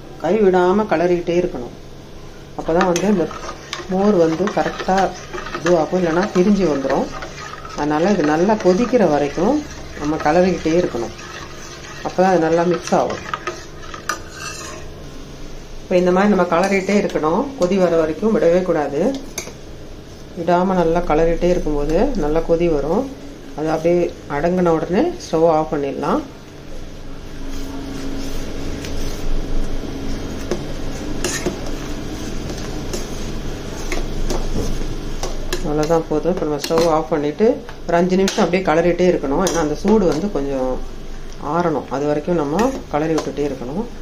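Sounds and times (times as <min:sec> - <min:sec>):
steady low hum: 0:00.0 - 0:44.0
ladle stirring thick curry: 0:02.8 - 0:14.9.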